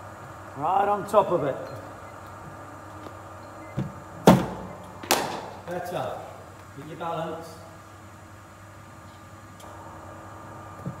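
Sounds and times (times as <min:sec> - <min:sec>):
cricket bat cracking on ball: 0:04.3 - 0:05.6.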